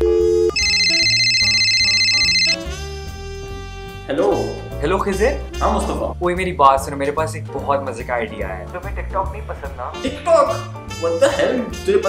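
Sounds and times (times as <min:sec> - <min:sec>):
two-note dial tone: 0:00.0 - 0:02.6
background music: 0:00.1 - 0:12.0
trilling electronic phone ring: 0:00.5 - 0:02.6.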